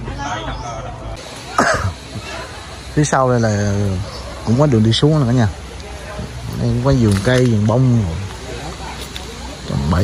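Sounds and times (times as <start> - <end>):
person coughing: 1.6 - 2.0.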